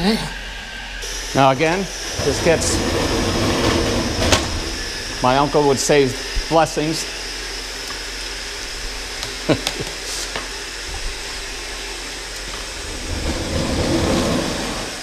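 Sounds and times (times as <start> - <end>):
water rushing through pipe: 1.0 - 7.4, 12.1 - 15.0.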